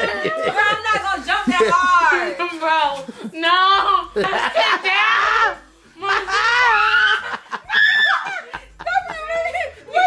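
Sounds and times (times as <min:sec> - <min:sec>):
people laughing: 0:00.0 - 0:02.4, 0:04.1 - 0:10.0.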